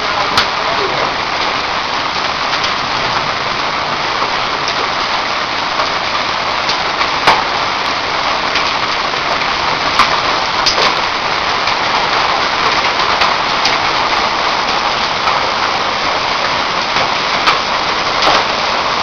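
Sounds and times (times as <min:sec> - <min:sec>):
heavy rain with hail: 0:00.0 - 0:19.0
hailstones striking hard surfaces: 0:05.8 - 0:19.0.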